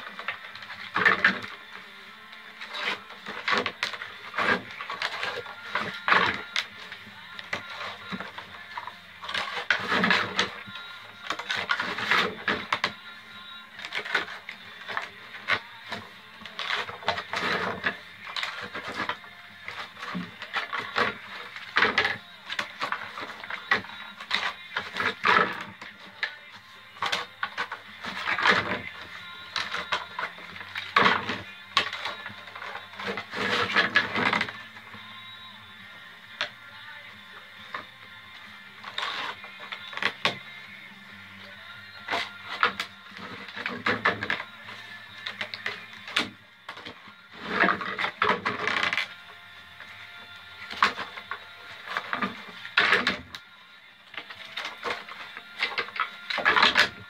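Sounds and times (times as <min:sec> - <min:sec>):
wood splints scraping: 0:00.0 - 0:01.8, 0:02.5 - 0:13.0, 0:13.8 - 0:26.4, 0:27.0 - 0:35.0, 0:38.8 - 0:40.4, 0:42.0 - 0:50.0
music: 0:00.0 - 0:57.0.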